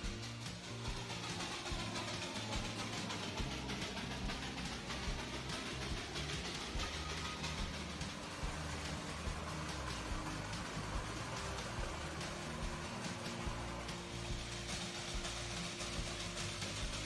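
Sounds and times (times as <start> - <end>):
background music: 0.0 - 17.0
steam train running: 0.0 - 17.0.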